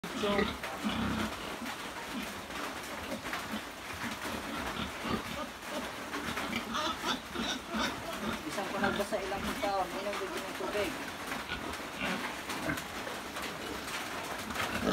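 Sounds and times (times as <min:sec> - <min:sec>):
low pig sounds: 0:00.0 - 0:14.9.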